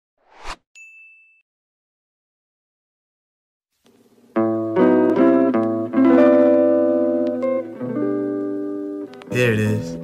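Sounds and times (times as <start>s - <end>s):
whoosh sound effect: 0.2s - 0.6s
bright high ding: 0.8s - 1.4s.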